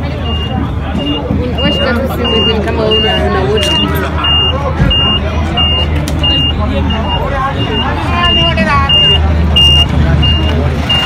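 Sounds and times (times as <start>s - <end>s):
reversing alarm beeping: 0.0s - 11.0s.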